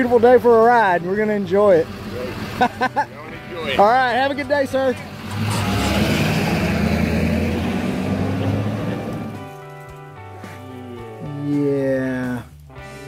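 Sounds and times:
pickup truck driving off: 0.0s - 10.3s
plucked guitar music: 0.0s - 13.0s.

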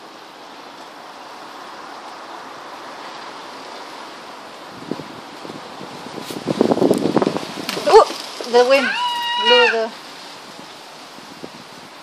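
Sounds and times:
leaves rustling: 0.0s - 12.0s
wind noise on microphone: 2.5s - 12.0s.

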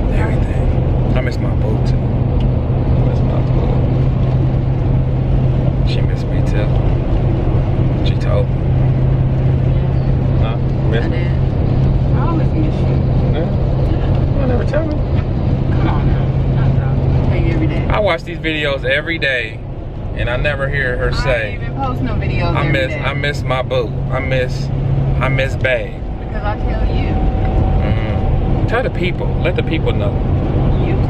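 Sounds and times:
car cabin road and engine hum: 0.0s - 31.0s.

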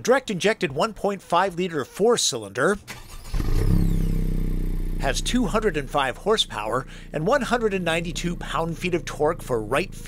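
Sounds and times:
car engine starting and idling: 2.7s - 10.0s.

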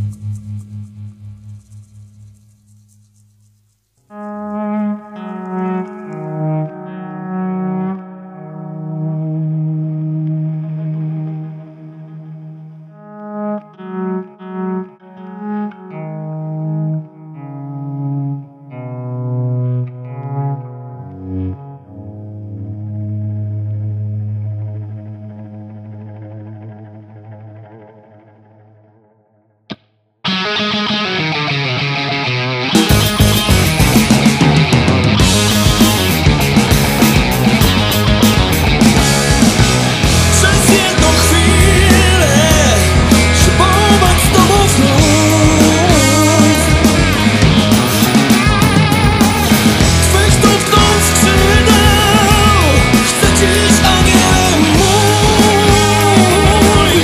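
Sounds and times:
electric guitar with echo: 4.1s - 57.0s
rock band playing loudly: 30.3s - 57.0s.

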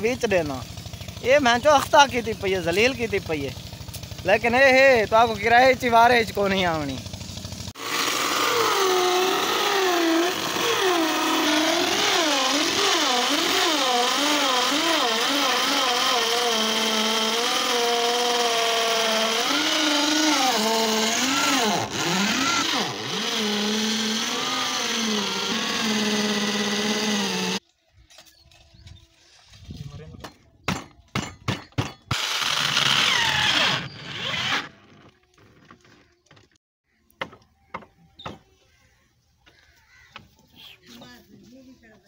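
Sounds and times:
electric drill boring into wood: 7.7s - 27.6s, 32.1s - 35.8s.

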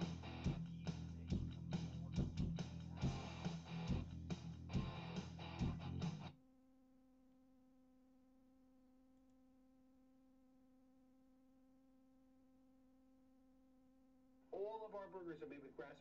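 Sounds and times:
music: 0.0s - 6.3s.

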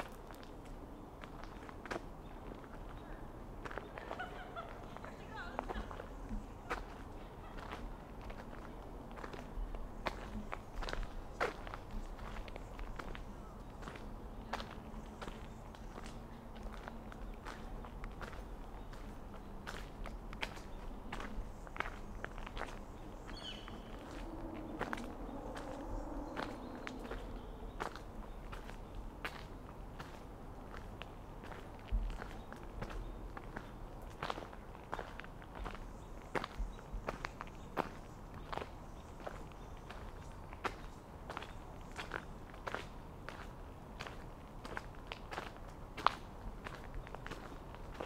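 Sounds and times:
footsteps on gravel: 13.8s - 35.8s.

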